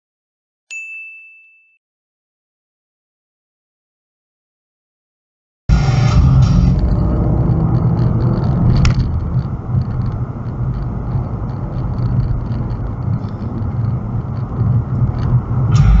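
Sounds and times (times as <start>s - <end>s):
car cabin road rumble: 5.7s - 16.0s.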